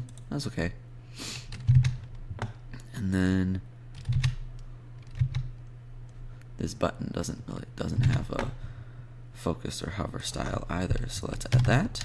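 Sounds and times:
computer keyboard keystrokes: 1.5s - 2.6s, 4.0s - 5.7s.

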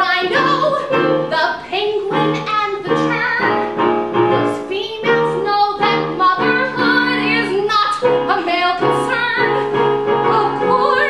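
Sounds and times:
woman singing with vibrato: 0.0s - 3.7s, 4.3s - 11.0s
piano accompaniment: 0.0s - 11.0s.

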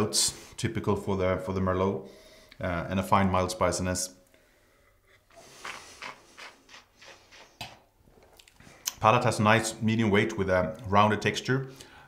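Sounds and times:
wet mouth clicks and sucking: 5.2s - 9.0s.

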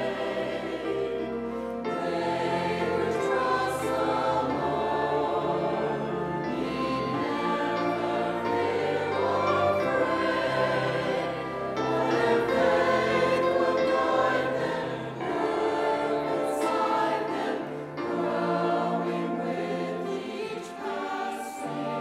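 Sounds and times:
choir singing: 0.0s - 22.0s
piano: 0.0s - 22.0s
strings and woodwinds: 0.0s - 22.0s.

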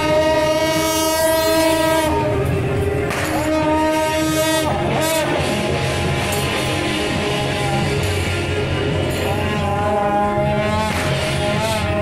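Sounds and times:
long horn blast: 0.0s - 12.0s.

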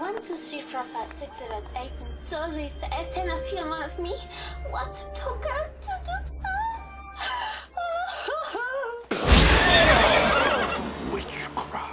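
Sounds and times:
woman fake sobbing: 6.5s - 9.1s.

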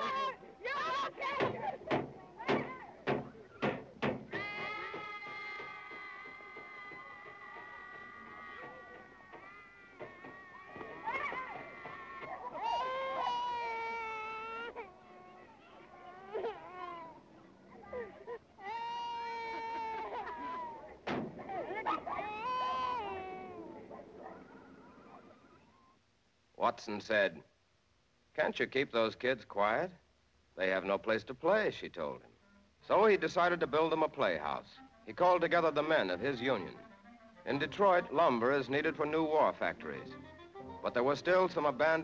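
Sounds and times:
children shouting: 0.0s - 3.0s, 4.3s - 25.7s.

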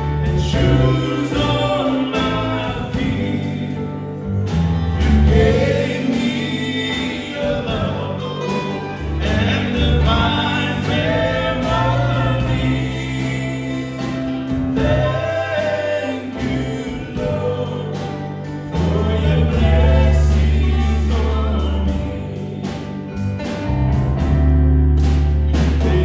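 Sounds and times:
voices singing together: 0.0s - 23.7s, 25.5s - 26.0s
guitars: 0.0s - 26.0s
keyboard: 0.0s - 26.0s
sustained bass notes: 0.0s - 26.0s.

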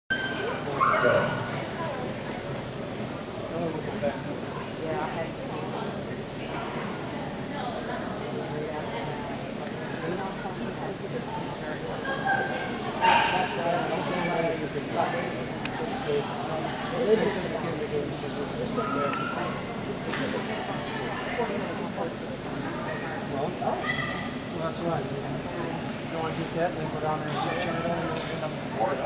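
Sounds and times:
people talking: 0.1s - 29.0s
dog barking: 13.0s - 13.5s.

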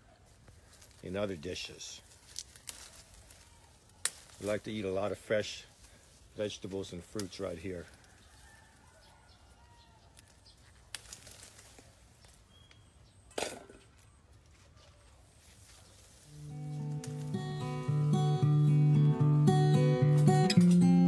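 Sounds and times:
fruit picked off branches: 0.2s - 8.4s, 10.0s - 12.9s, 13.5s - 21.0s
faint bird chirp: 12.1s - 13.3s
acoustic guitar music: 16.3s - 21.0s.

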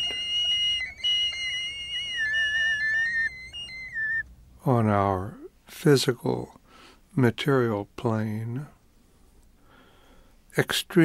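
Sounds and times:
high electronic whistle tones: 0.0s - 4.3s.

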